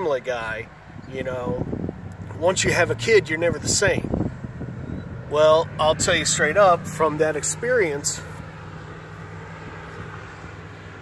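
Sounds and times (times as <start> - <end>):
faint outdoor background noise: 0.0 - 11.0.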